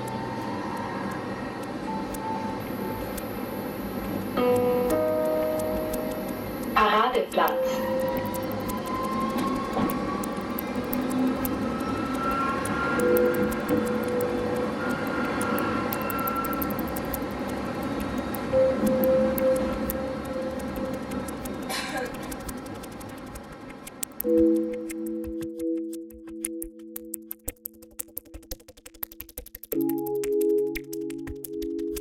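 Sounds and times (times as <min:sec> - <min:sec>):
tram drive whine: 0:00.0 - 0:24.0.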